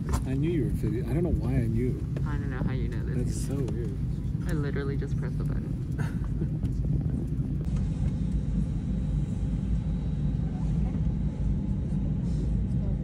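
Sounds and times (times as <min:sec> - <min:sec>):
airliner cabin rumble: 0:00.0 - 0:13.0.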